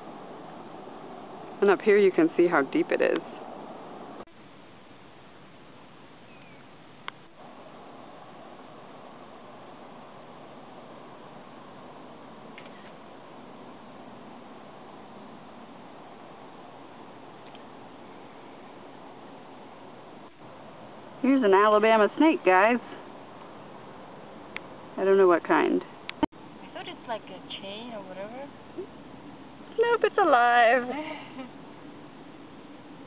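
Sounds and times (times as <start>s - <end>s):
outdoor background hiss: 0.0s - 33.0s
faint chirps: 6.2s - 6.7s.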